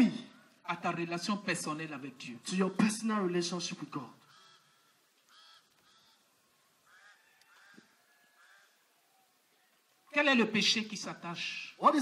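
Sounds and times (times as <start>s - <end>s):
faint high-pitched calls: 4.2s - 10.1s.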